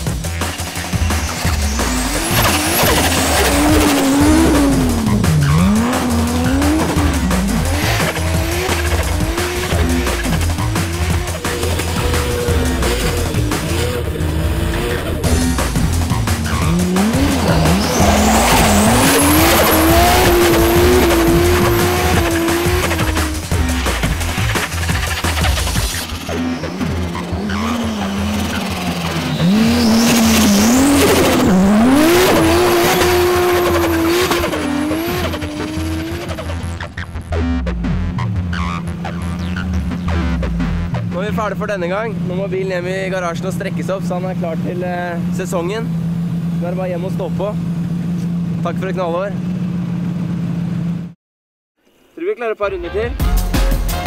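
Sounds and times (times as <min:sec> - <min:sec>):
car engine revving hard: 0:00.0 - 0:37.0
wheels spinning on snow: 0:00.4 - 0:36.8.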